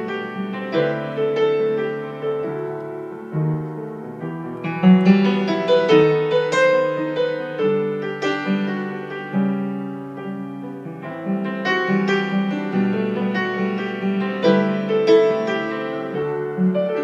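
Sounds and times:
grand piano playing: 0:00.0 - 0:17.0.

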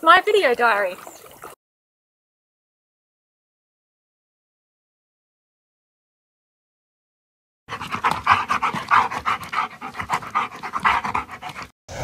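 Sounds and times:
dog panting: 0:07.7 - 0:11.8.

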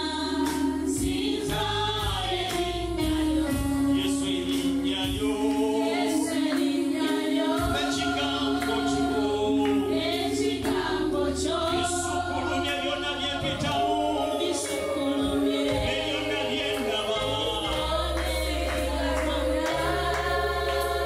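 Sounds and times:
man and woman singing gospel: 0:00.0 - 0:21.0.

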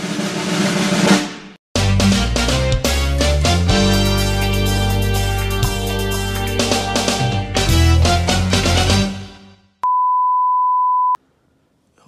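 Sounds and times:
steady electronic beep: 0:09.8 - 0:11.2.

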